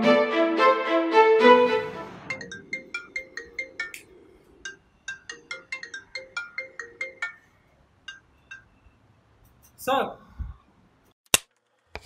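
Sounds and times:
phone ringtone chiming notes: 2.2s - 8.8s.

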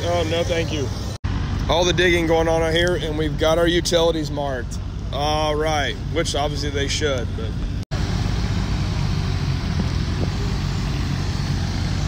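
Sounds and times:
mini loader engine running: 7.9s - 12.0s.

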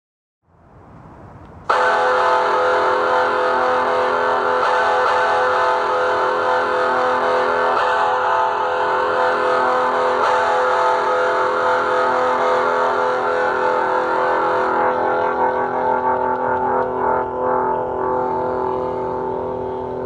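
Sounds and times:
distorted electric guitar chord: 1.8s - 20.0s.

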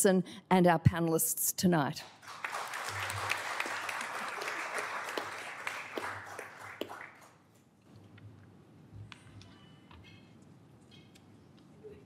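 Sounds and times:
audience applauding: 2.2s - 7.4s.

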